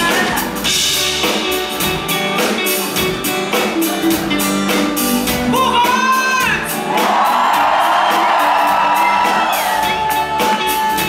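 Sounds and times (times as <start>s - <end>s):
man singing: 0.0s - 0.6s.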